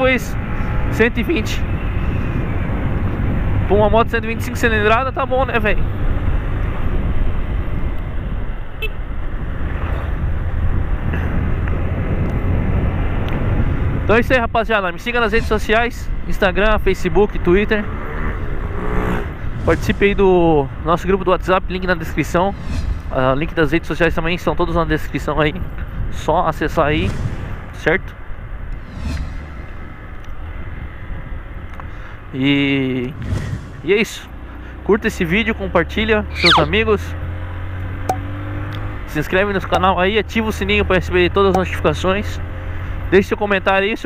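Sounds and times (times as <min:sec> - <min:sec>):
wind rush on microphone: 0:00.0 - 0:34.9
road noise: 0:00.0 - 0:44.0.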